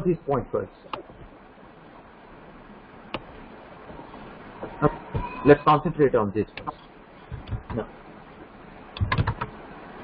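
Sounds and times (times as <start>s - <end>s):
keyboard keys clicking: 9.0s - 9.5s.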